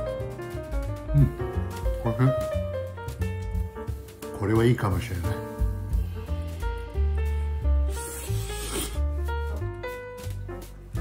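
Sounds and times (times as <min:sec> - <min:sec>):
jazzy background music: 0:00.0 - 0:11.0
noodle slurp: 0:07.9 - 0:09.1.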